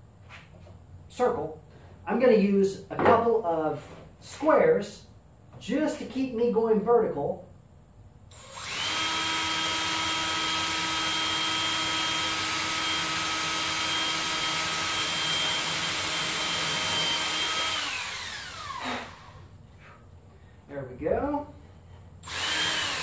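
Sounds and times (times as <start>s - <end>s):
power drill running: 8.3s - 19.5s, 22.2s - 23.0s.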